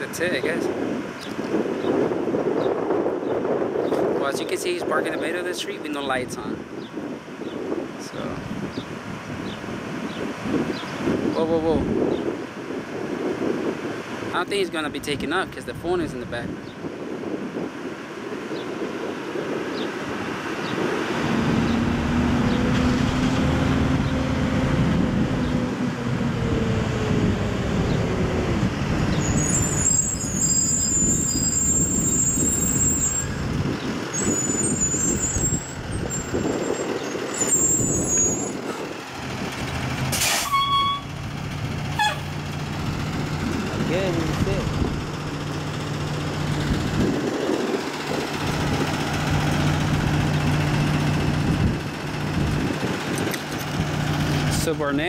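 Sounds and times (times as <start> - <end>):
diesel truck engine running: 15.8 - 55.0.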